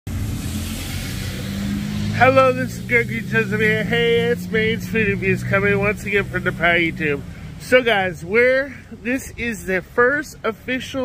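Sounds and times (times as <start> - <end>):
vehicle engine running: 0.1 - 10.0.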